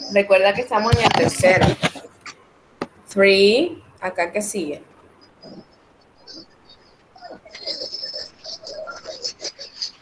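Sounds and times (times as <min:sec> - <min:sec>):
choppy voice over video call: 0:00.0 - 0:10.0.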